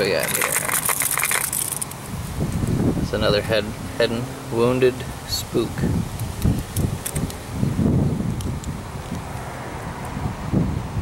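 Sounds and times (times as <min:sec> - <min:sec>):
wind buffeting microphone: 0:02.0 - 0:11.0.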